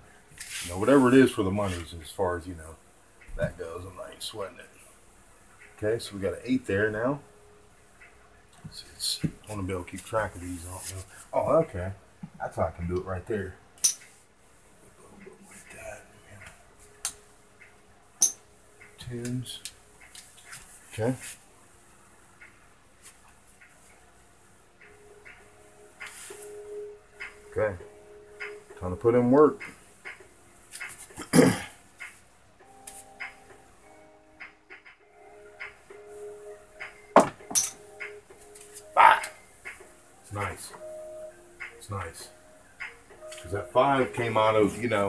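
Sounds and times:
soft background music: 24.3s - 30.7s, 31.8s - 45.0s.

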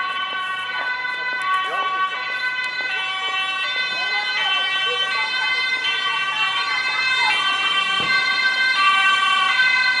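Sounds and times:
ambulance two-tone siren: 0.0s - 10.0s.

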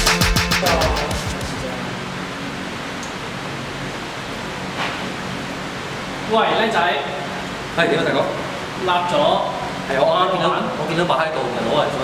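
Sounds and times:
man talking: 0.5s - 2.0s.

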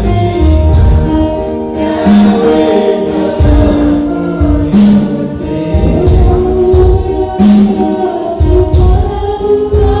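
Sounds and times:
bass beat: 0.0s - 7.6s
electronic keyboard: 0.0s - 10.0s
gospel choir singing: 0.0s - 10.0s.

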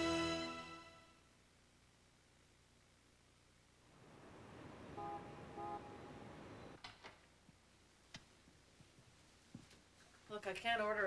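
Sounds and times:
faint street traffic: 3.8s - 6.8s
car horn toots: 5.0s - 6.0s.

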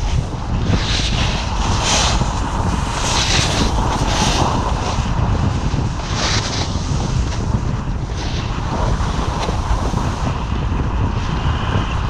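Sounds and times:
wind rushing over microphone: 0.0s - 12.0s
snowboard edge scraping snow: 0.7s - 5.0s, 5.6s - 7.5s, 8.1s - 10.3s.

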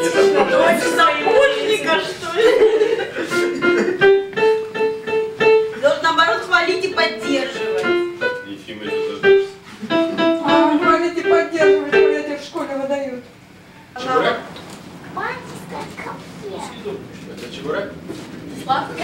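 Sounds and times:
electronic keyboard melody: 0.0s - 2.1s, 3.3s - 12.4s.

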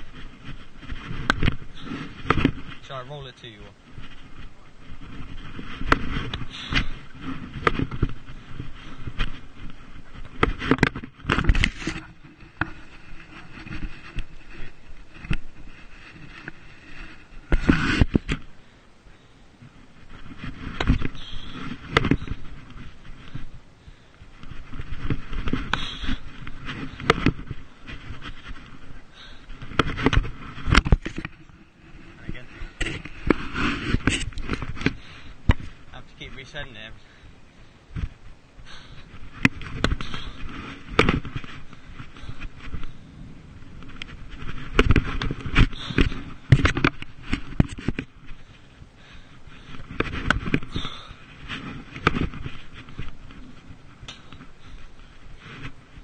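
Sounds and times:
thumps and rubbing on microphone: 0.0s - 56.0s.

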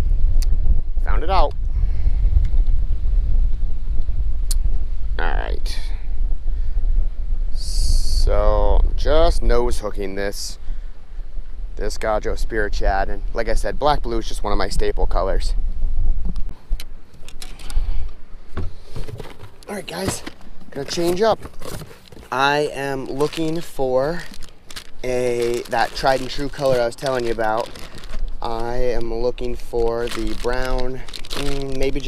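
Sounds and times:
wind buffeting microphone: 0.0s - 21.7s
fishing gear clicks and knocks: 16.7s - 17.8s, 18.6s - 22.4s, 23.0s - 29.1s, 29.8s - 32.0s.

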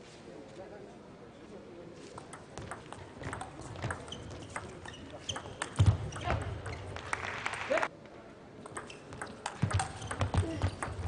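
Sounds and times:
table tennis ball ticking: 8.7s - 11.0s.

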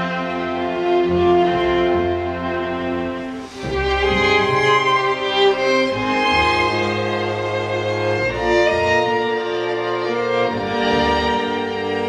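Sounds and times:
string ensemble bowed notes: 0.0s - 12.0s.

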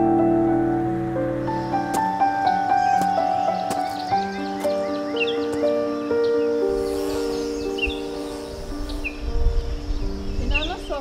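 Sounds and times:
slow instrumental background music: 0.0s - 11.0s.

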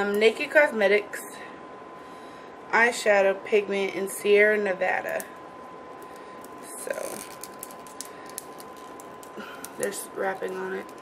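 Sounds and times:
plastic wrapping crinkling: 6.0s - 11.0s.

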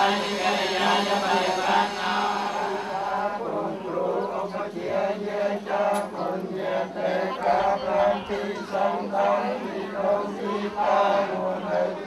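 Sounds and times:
group chanting in monotone: 0.0s - 12.0s.

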